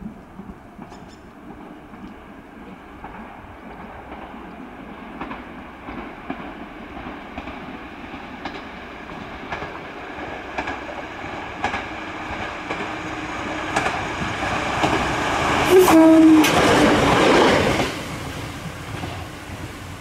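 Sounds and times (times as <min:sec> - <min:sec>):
railcar rumble: 0:00.0 - 0:20.0
steady hum from railcar: 0:00.0 - 0:20.0
railcar wheels clicking over rail joints: 0:00.3 - 0:15.7, 0:16.4 - 0:20.0.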